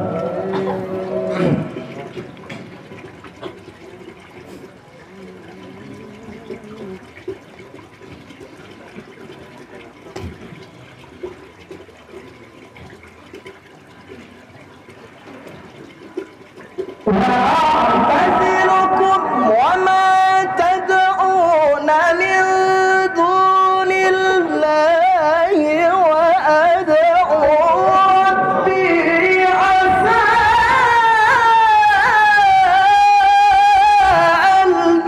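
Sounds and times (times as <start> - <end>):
amplified chanted recitation: 0.0 - 2.1, 17.0 - 35.0
faint murmuring voices: 3.4 - 16.7
hall noise: 17.0 - 21.6, 27.1 - 35.0.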